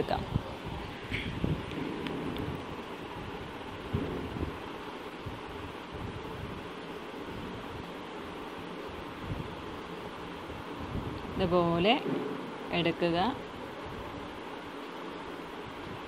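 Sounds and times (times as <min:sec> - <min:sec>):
fabric rustling and knocks: 0:01.1 - 0:02.9.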